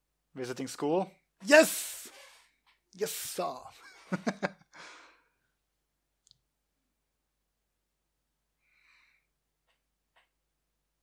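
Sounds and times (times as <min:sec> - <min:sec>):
person laughing: 0:03.8 - 0:04.7
soft breath: 0:04.7 - 0:05.5, 0:08.6 - 0:09.4.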